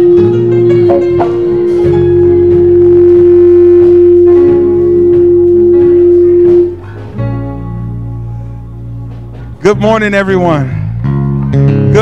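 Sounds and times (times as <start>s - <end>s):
held keyboard note: 0.0s - 10.4s
worship band music: 0.0s - 12.0s.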